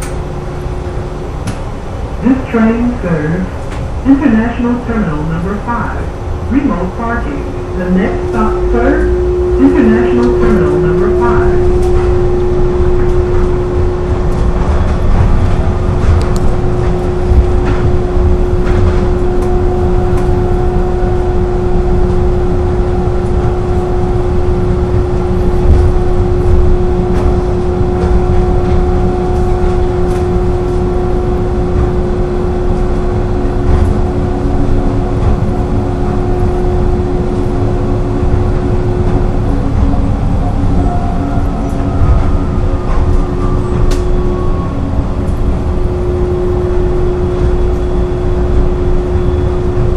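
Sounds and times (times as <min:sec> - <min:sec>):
electric hum: 0:00.0 - 0:49.9
tram running gear rumble: 0:00.0 - 0:49.9
higher tone: 0:04.1 - 0:49.9.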